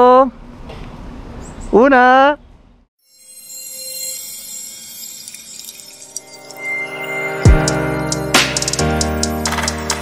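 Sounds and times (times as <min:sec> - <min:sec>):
shimmering chime-like sparkle: 0:03.0 - 0:09.4.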